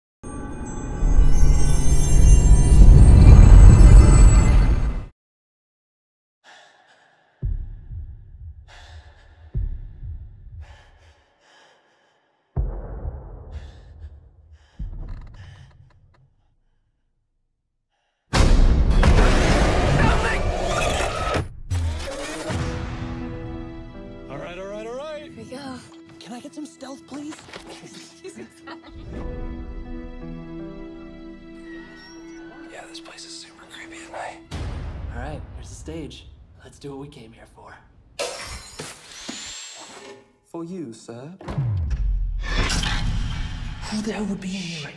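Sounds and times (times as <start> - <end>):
person gasping breaths: 6.4 - 7.5, 8.6 - 9.8, 10.5 - 12.6, 13.5 - 15.9
loud smashing crash: 18.3 - 21.2.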